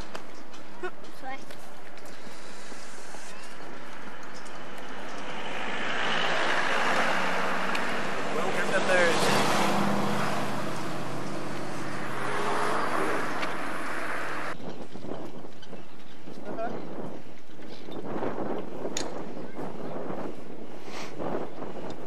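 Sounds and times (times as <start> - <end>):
car passing: 2.2 - 14.6.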